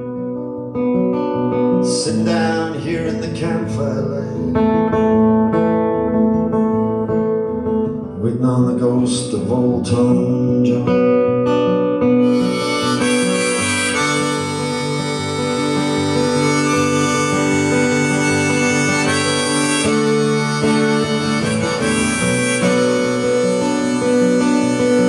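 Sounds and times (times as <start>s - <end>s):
acoustic guitar accompaniment: 0.0s - 25.0s
harmonica playing held notes: 12.2s - 25.0s.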